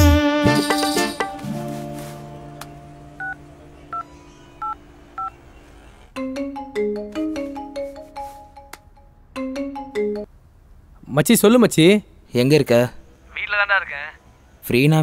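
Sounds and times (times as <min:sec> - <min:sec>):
mobile phone ringtone: 0:06.7 - 0:08.6.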